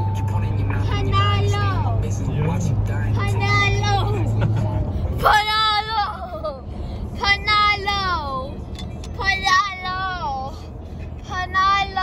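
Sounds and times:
car cabin road noise: 0.0s - 12.0s.

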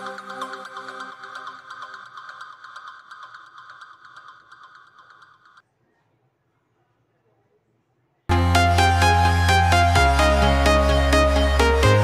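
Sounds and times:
fast ticking beat: 0.0s - 5.6s.

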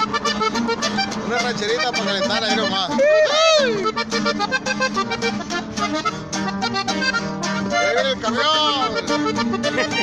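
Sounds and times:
accordion: 0.0s - 10.0s
strummed guitar: 0.0s - 10.0s.

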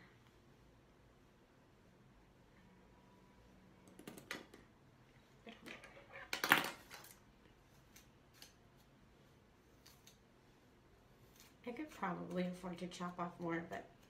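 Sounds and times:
scissors snipping hair: 7.7s - 9.0s, 9.7s - 10.3s, 11.3s - 12.6s.

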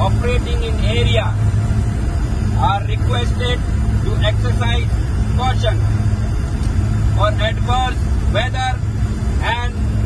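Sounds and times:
aircraft engines droning: 0.0s - 10.0s
man speaking: 2.6s - 5.8s, 7.1s - 8.8s, 9.4s - 9.8s.

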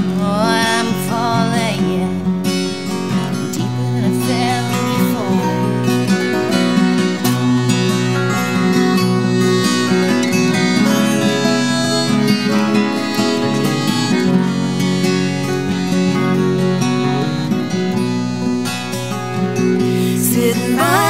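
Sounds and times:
accordion sustained chords: 0.0s - 21.0s
acoustic guitars strummed and picked: 0.0s - 21.0s.

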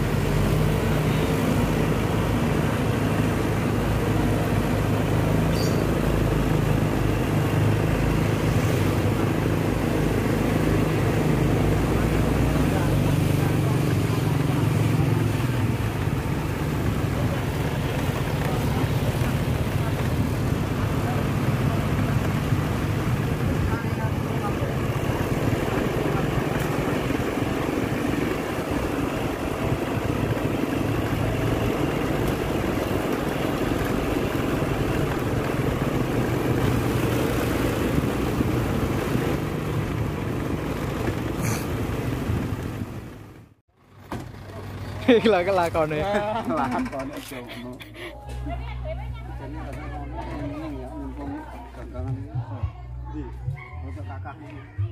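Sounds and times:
vehicle engine running: 0.0s - 53.4s
road and tyre noise: 0.0s - 54.9s.

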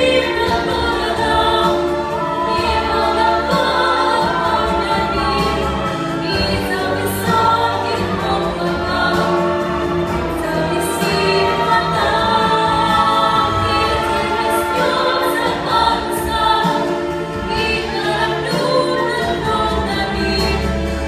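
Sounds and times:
boy and girl singing duet: 0.0s - 21.0s
instrumental accompaniment: 0.0s - 21.0s.

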